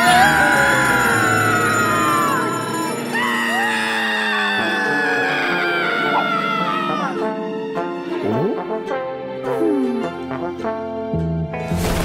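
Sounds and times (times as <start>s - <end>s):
cartoon screams sliding down: 0.0s - 7.2s
background music: 0.0s - 12.0s.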